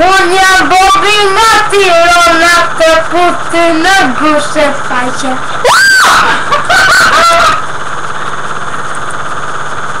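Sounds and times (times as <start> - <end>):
buzzing drone: 0.0 - 10.0.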